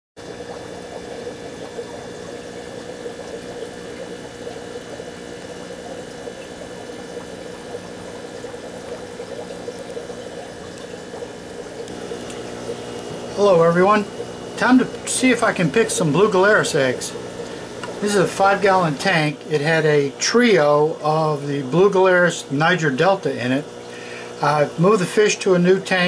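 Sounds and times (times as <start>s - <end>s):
aquarium water bubbling: 0.2s - 26.0s
tank equipment hum: 0.2s - 26.0s.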